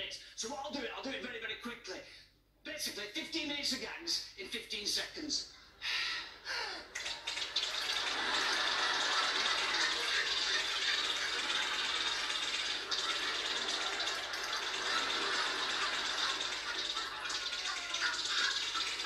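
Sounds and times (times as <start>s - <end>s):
audience applause: 6.9s - 19.0s.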